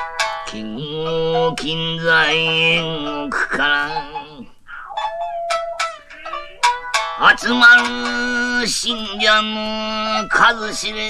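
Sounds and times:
shamisen plucked: 0.0 - 11.0.

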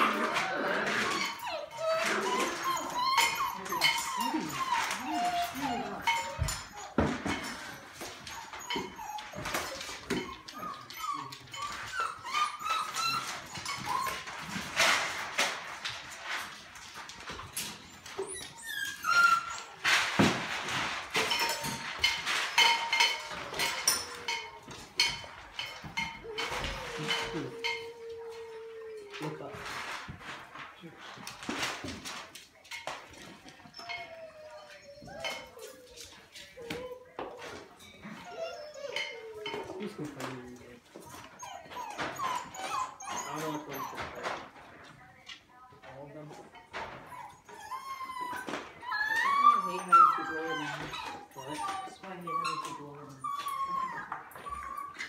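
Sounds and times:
puppies whimpering and whining: 0.0 - 30.4, 32.9 - 44.9, 45.7 - 55.0
clicks and knocks of puppies moving: 0.0 - 55.0.

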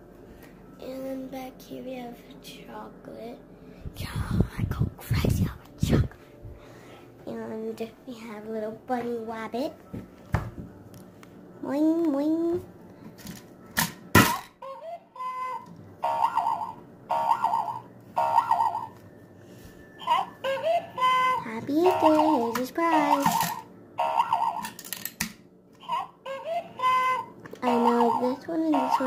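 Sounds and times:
toy chirping electronic notes: 14.6 - 19.0, 20.0 - 24.7.

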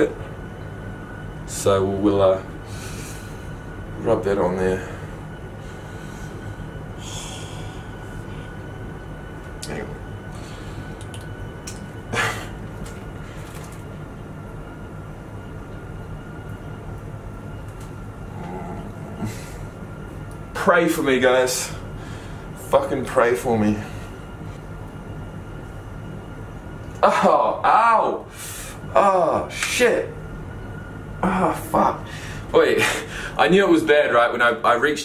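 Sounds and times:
low room hum: 0.0 - 35.0
machine-like drone: 0.0 - 35.0.

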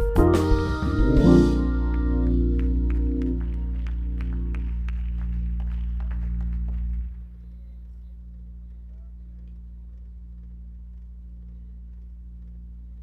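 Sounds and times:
keyboard chord: 0.0 - 7.2
low electrical hum: 0.0 - 13.0.

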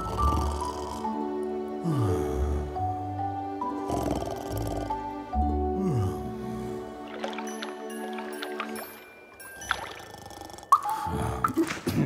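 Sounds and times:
background music of held notes: 0.0 - 12.0
cartoon animal growling: 3.8 - 5.0.

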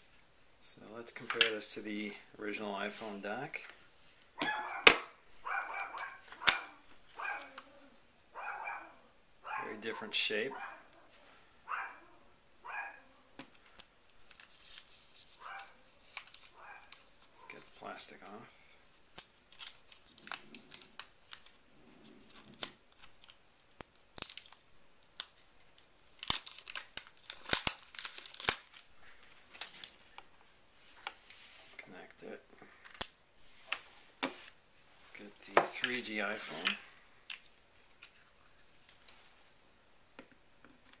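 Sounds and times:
dog yelping: 4.4 - 11.1, 11.7 - 13.1, 16.6 - 16.9
thin plastic crinkling: 13.4 - 31.8.

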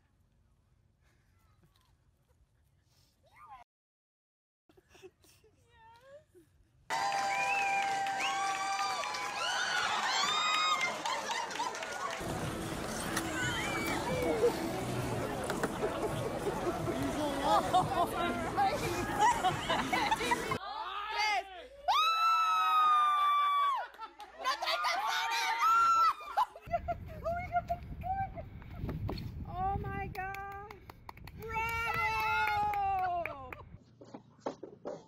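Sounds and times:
high whoops and shouts: 6.9 - 12.2, 13.3 - 14.6, 20.6 - 26.6, 31.4 - 33.6
crowd cheering and clapping: 6.9 - 20.6, 21.9 - 26.6, 31.2 - 33.6.

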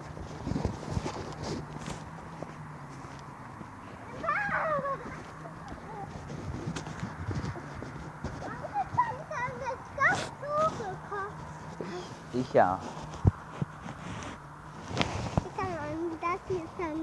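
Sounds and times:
young child calling and chattering: 3.8 - 12.4, 15.4 - 17.0.

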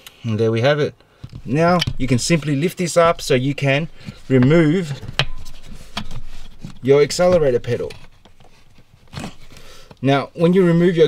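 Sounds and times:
faint handling noise: 1.1 - 11.0.

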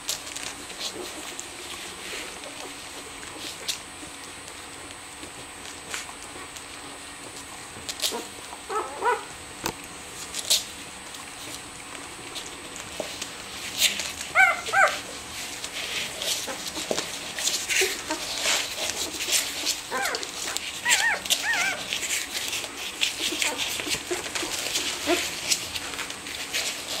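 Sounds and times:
soft rustling: 11.4 - 27.0
puppies squealing: 14.3 - 15.1, 19.8 - 22.1.

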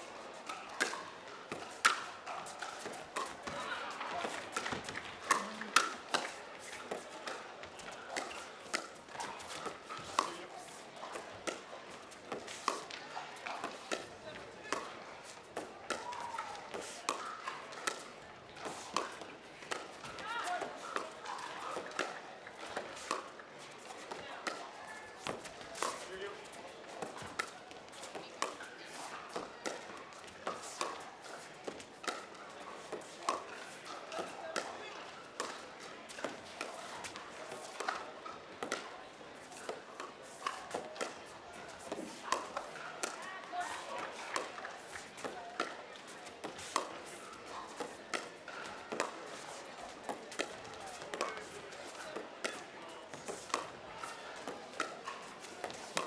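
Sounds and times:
crowd chatter: 0.0 - 56.0
ball bouncing on court: 2.6 - 6.3, 10.0 - 10.4
paddles hitting plastic ball: 4.2 - 7.0, 22.8 - 23.2.

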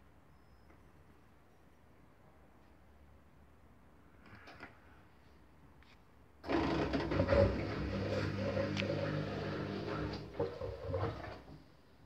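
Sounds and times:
washing machine running: 6.4 - 11.6.

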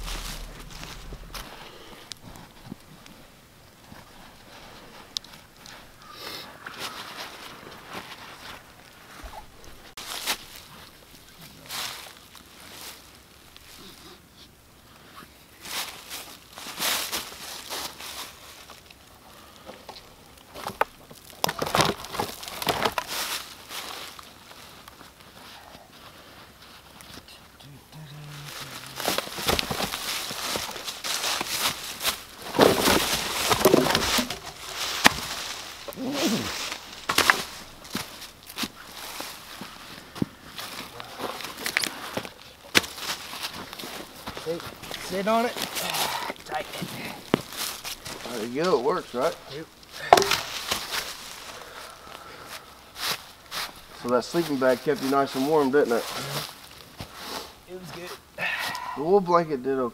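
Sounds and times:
footsteps crunching dry leaves: 0.0 - 2.0, 15.6 - 18.8, 22.2 - 27.0, 28.3 - 48.5, 49.2 - 58.2
camp gear handling: 28.6 - 54.0.

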